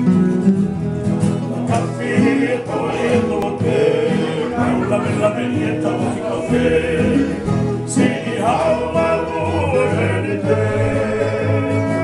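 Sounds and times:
strummed acoustic guitar: 0:00.0 - 0:12.0
men singing in harmony: 0:01.7 - 0:12.0.

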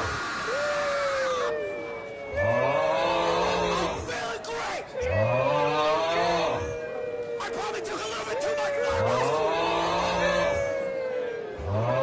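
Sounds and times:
lower voice moaning: 0:00.0 - 0:04.1, 0:05.0 - 0:07.1, 0:08.4 - 0:12.0
voices moaning: 0:00.0 - 0:12.0.

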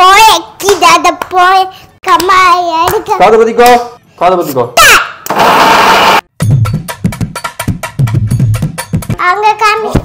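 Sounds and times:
mixer grinder running: 0:05.3 - 0:06.2
music with clicking percussive beat: 0:06.4 - 0:09.2.

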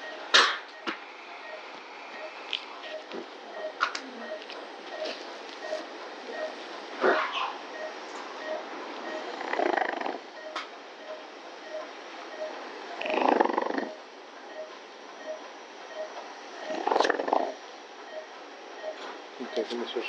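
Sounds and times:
patient monitor beeping: 0:00.0 - 0:20.0.

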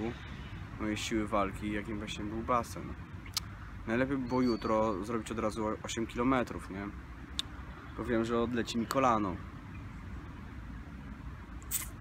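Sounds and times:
low outdoor background rumble: 0:00.0 - 0:12.0
short hiss: 0:11.6 - 0:12.0.

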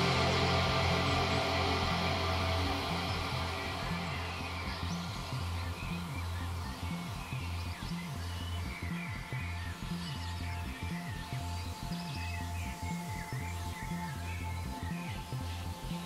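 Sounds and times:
deep bass pulsing: 0:00.0 - 0:16.0
downtempo electronic music: 0:00.0 - 0:16.0.

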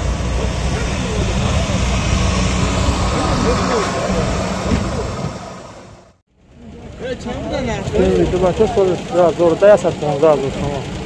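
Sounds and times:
car engine idling: 0:00.0 - 0:11.0
people talking: 0:00.3 - 0:02.1, 0:02.9 - 0:05.3, 0:06.6 - 0:11.0.

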